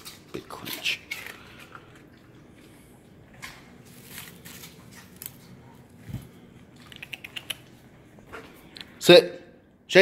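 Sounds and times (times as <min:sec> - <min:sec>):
paper wrapper crinkling: 0:03.7 - 0:06.0.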